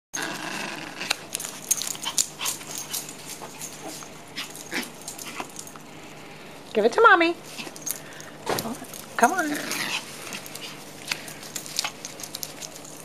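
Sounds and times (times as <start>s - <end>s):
dog making sounds at play: 0.2s - 6.0s, 7.4s - 13.0s.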